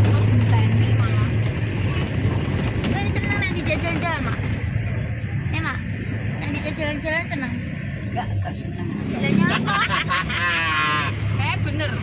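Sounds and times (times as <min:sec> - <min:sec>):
people talking: 0:00.0 - 0:04.5
car engine and road noise: 0:00.0 - 0:12.0.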